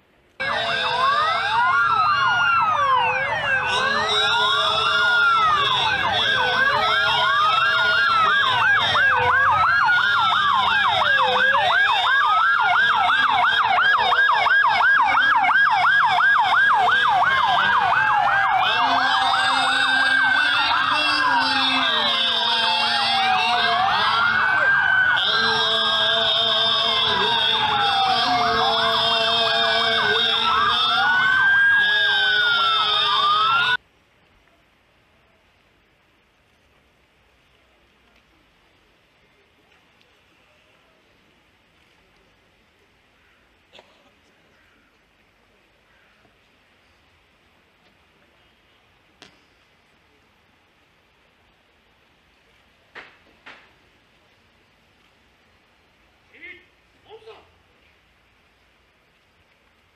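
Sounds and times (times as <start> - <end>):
fast siren warble: 0.4 - 33.8
police sirens wailing: 0.4 - 33.8.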